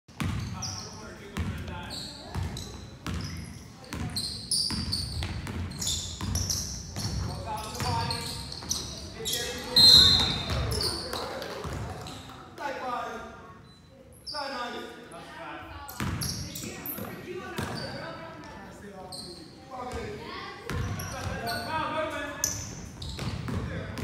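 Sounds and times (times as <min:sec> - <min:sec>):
sneakers squeaking: 0:00.1 - 0:12.5, 0:13.2 - 0:14.8, 0:15.9 - 0:24.0
voices echoing in a hall: 0:00.3 - 0:24.0
loud whistle blowing: 0:09.7 - 0:10.5.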